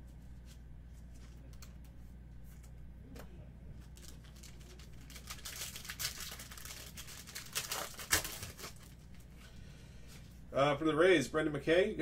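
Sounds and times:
plastic crinkling: 3.8s - 9.3s.

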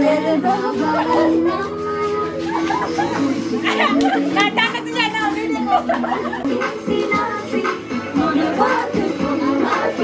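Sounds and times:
dance music: 0.0s - 10.0s
people chattering and calling out: 0.0s - 10.0s.

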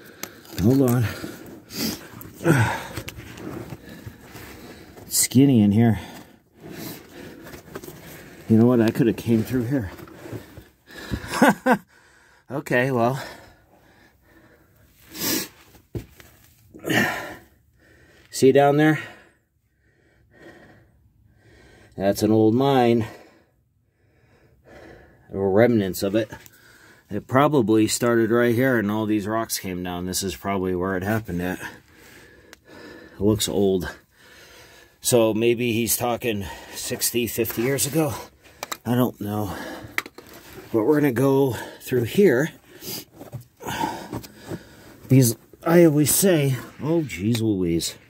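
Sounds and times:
man breathing: 0.0s - 5.1s, 10.0s - 12.5s, 13.2s - 15.7s, 16.8s - 18.3s, 18.9s - 22.0s, 23.0s - 25.3s, 26.4s - 27.1s, 31.6s - 33.3s, 33.9s - 35.0s, 42.5s - 45.1s
man speaking: 35.0s - 39.6s, 45.1s - 48.0s.

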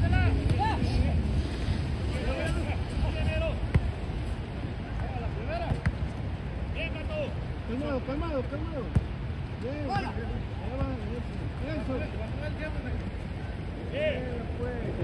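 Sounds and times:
wind rumbling on microphone: 0.0s - 7.7s
players calling and shouting: 0.0s - 15.0s
soccer ball kicked: 3.6s - 4.0s, 5.0s - 6.0s, 8.8s - 9.1s.

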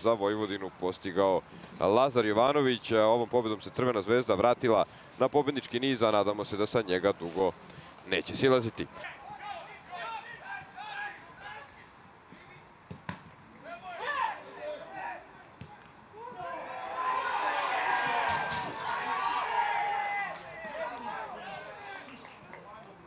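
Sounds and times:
players shouting: 9.0s - 11.8s, 13.6s - 22.4s
ball being kicked: 12.9s - 13.4s
players cheering: 16.1s - 22.6s.

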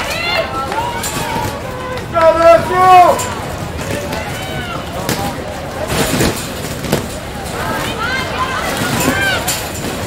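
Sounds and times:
people shouting outdoors: 0.0s - 3.5s
outdoor background noise: 0.0s - 10.0s.

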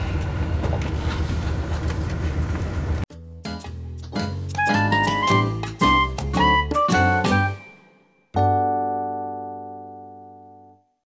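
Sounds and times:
train cabin low drone: 0.0s - 3.0s
wheels rumbling on rail: 0.0s - 3.0s.

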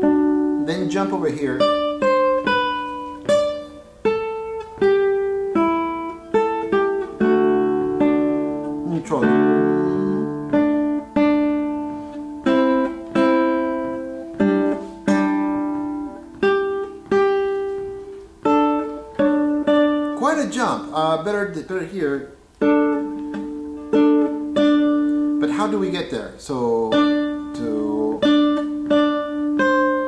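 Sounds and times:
classical guitar plucked notes: 0.0s - 30.0s.

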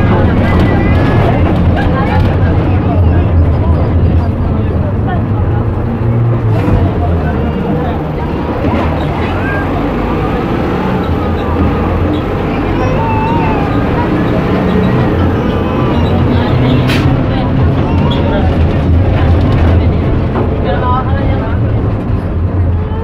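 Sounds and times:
bus engine rumble: 0.0s - 23.0s
passengers' voices: 0.0s - 23.0s.

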